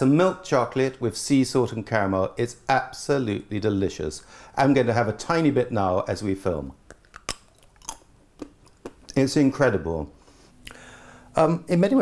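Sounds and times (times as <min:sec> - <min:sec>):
chewing mouth clicks: 0:06.8 - 0:09.2.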